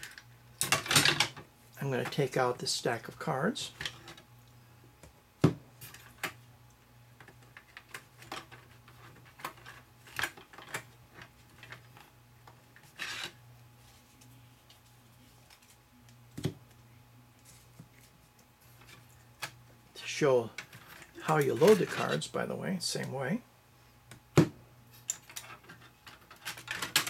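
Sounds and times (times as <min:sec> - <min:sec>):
steady low hum: 0:00.0 - 0:26.4
scraping rustle of cards: 0:12.8 - 0:15.8.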